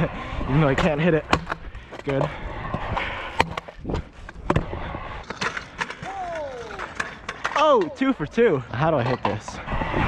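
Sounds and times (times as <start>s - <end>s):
scooter wheels rolling on concrete: 0.0s - 10.0s
scooter clacking on concrete: 5.2s - 9.6s
person calling out: 6.0s - 6.9s.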